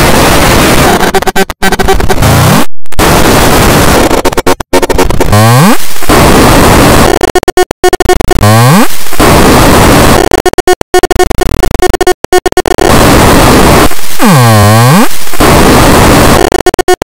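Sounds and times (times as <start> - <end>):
distorted cartoon soundtrack: 0.0 - 17.0
held tones: 4.2 - 17.0.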